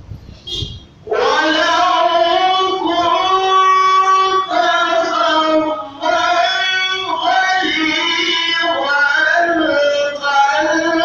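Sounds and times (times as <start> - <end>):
voices singing devotional chant: 1.0 - 11.0.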